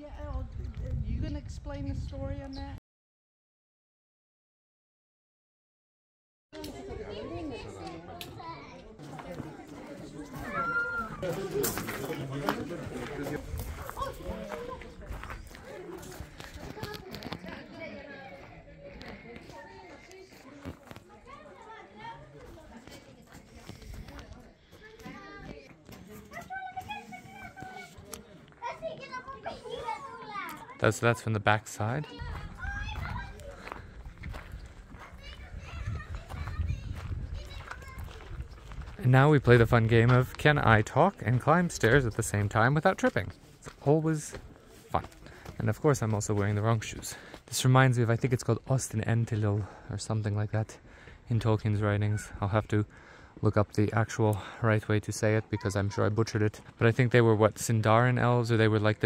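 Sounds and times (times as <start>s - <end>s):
children's voices: 6.6s - 11.6s, 13.7s - 30.8s, 32.0s - 38.8s
distant people chattering: 6.6s - 30.8s
murmur of visitors talking: 6.6s - 59.0s
children calling: 10.0s - 12.6s
high-pitched child's voice: 35.0s - 38.3s.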